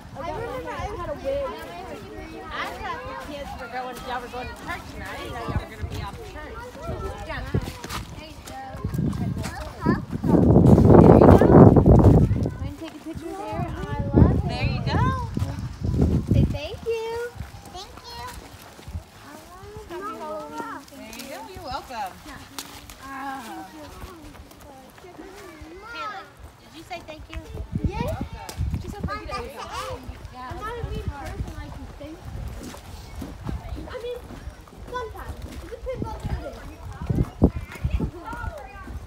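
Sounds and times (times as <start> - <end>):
footsteps on pavement: 0.0 - 39.0
indistinct voices talking: 0.0 - 39.0.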